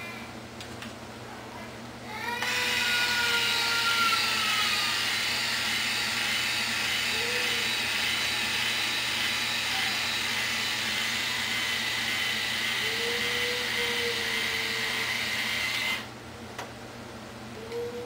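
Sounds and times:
hair iron motor whirring: 2.4 - 16.1.

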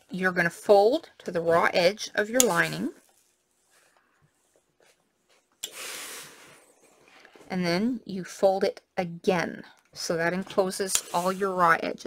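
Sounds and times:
steam iron hissing: 5.6 - 6.7.

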